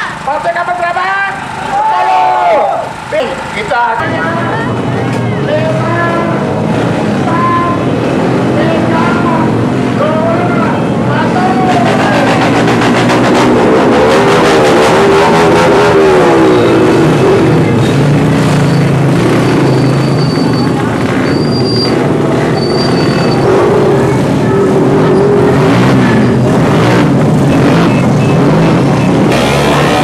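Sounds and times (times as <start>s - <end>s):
motorcycle engines revving: 0.0s - 30.0s
people shouting: 1.6s - 3.0s, 8.9s - 12.6s.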